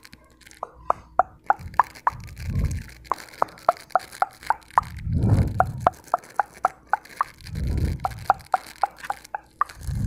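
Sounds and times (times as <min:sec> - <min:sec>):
low rushing swells: 0:04.8 - 0:06.0.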